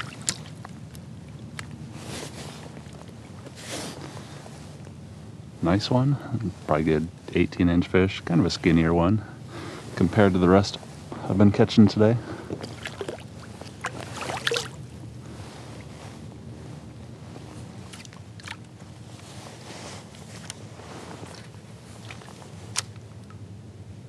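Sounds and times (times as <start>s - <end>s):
water splashing and dripping: 0.0s - 1.8s, 12.6s - 14.8s
faint wash of water: 0.0s - 4.8s, 12.2s - 23.0s
wind: 0.0s - 24.0s.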